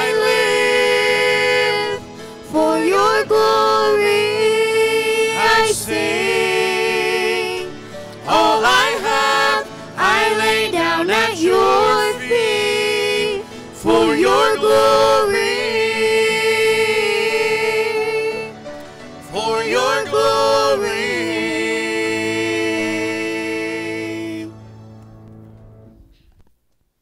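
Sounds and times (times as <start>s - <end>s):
vocal group singing in harmony: 0.0s - 24.7s.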